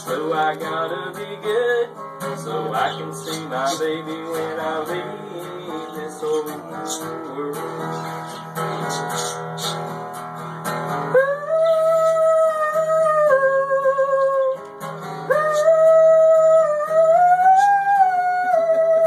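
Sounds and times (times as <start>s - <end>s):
man singing wordless held notes: 0.0s - 9.9s
acoustic guitar strumming: 0.0s - 19.0s.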